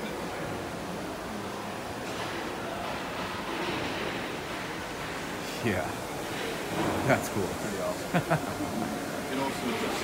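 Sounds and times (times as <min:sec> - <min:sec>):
factory hall background noise: 0:00.0 - 0:10.0.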